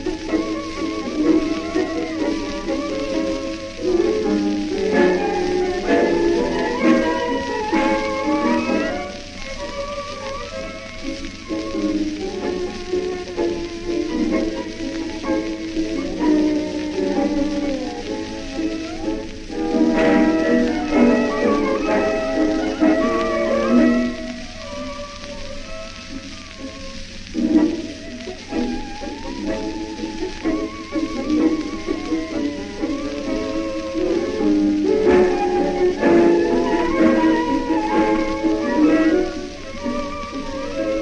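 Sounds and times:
instrumental tango orchestra: 0.0 - 41.0
record surface hiss and crackle: 0.0 - 41.0.

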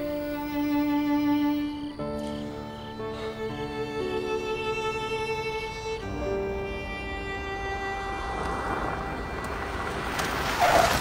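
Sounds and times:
string music: 0.0 - 11.0
car engine and tyre noise: 4.8 - 11.0.

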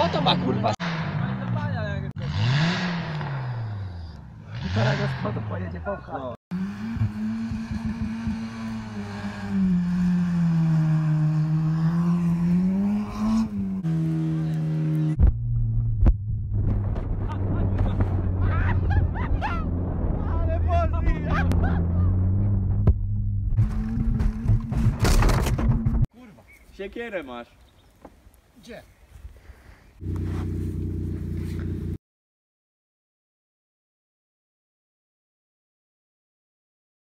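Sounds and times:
car engine revving: 0.0 - 5.7, 6.5 - 15.2, 30.0 - 32.0.

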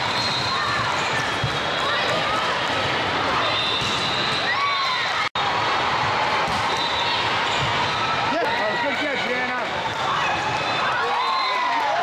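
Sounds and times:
players' voices: 0.4 - 12.0.

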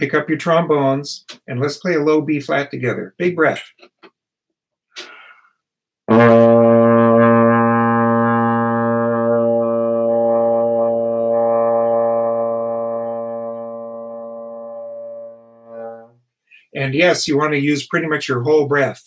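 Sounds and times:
trombone long tone: 6.1 - 16.2.

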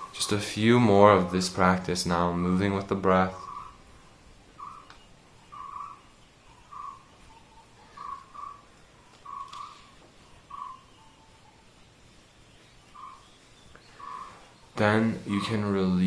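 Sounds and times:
bird calling faintly: 0.0 - 16.0.

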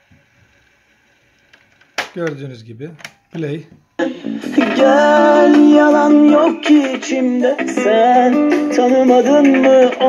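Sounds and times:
song with voice and plucked strings: 4.0 - 10.0.

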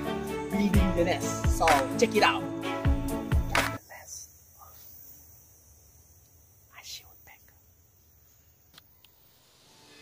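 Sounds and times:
music: 0.0 - 3.8, 9.6 - 10.0
faint whispering: 3.8 - 5.0, 6.6 - 7.7
small sharp ticks: 5.8 - 9.3.

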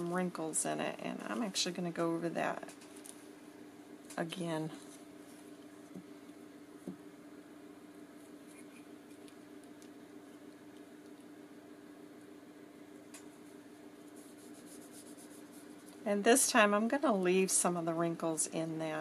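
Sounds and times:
steady low hum: 0.0 - 19.0
glue stick rubbing on paper: 14.1 - 16.0.

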